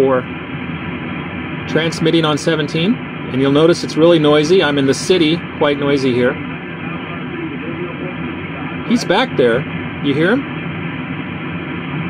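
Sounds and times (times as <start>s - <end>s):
radio band noise: 0.0s - 12.0s
weak radio voice: 1.7s - 10.4s.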